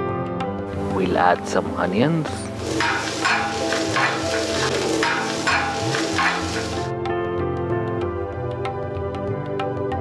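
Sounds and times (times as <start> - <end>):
background music: 0.0 - 10.0
vegetables sizzling on griddle: 2.5 - 6.9
metal spatula scraping: 2.6 - 6.9.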